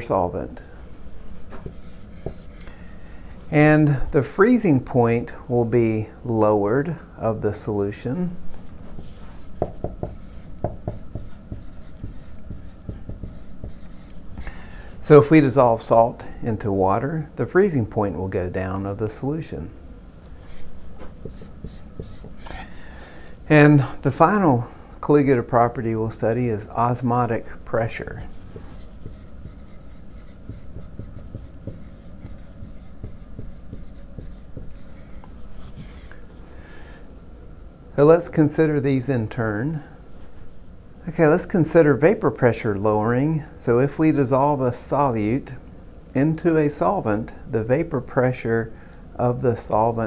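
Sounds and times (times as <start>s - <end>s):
marker writing on whiteboard: 1.5s - 2.6s, 8.8s - 14.4s, 20.5s - 22.6s, 28.2s - 35.9s.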